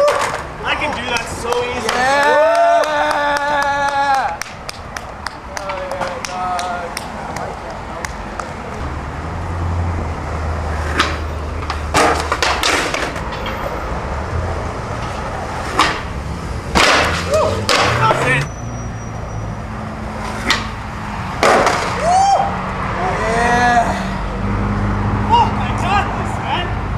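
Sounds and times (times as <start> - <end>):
skateboard clacks and slams: 0.0 - 2.2, 10.9 - 13.6, 15.0 - 18.4, 21.4 - 22.0
skateboard wheels rolling on concrete: 0.0 - 18.5, 19.2 - 24.0
people shouting: 1.7 - 4.4, 17.2 - 18.4, 21.9 - 24.1.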